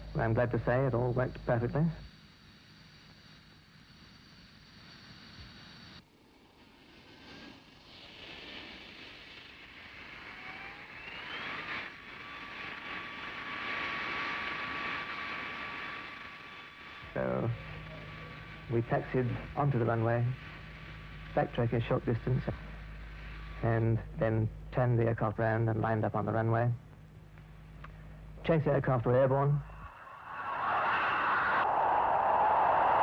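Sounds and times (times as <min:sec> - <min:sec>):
jet engines whining: 0:06.4 - 0:33.0.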